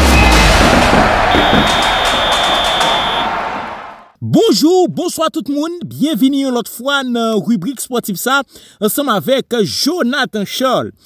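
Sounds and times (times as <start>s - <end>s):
steady high tone: 1.3s - 3.4s.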